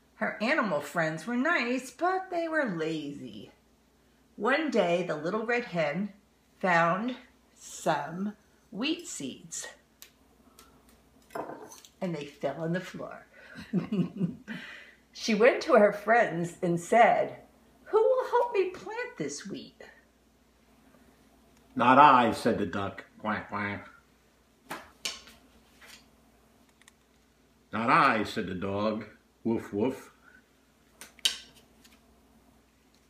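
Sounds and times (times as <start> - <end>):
paper rustling: 31.5 - 32.0.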